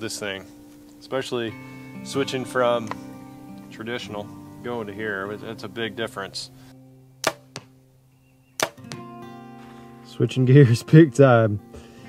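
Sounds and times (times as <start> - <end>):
soft guitar music: 0.0 - 12.0
bow shot snap: 7.2 - 7.7, 8.6 - 9.1.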